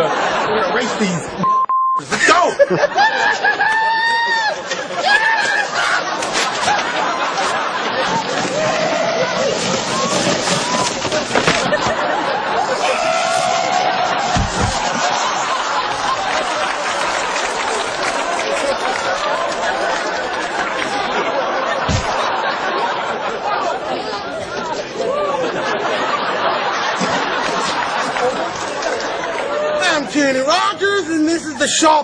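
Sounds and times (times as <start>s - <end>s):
people talking over one another: 4.6s - 32.0s
indistinct voices: 8.0s - 21.2s.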